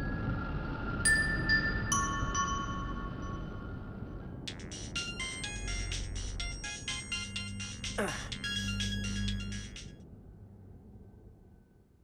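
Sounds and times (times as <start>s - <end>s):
mobile phone ringtone: 4.6s - 9.9s.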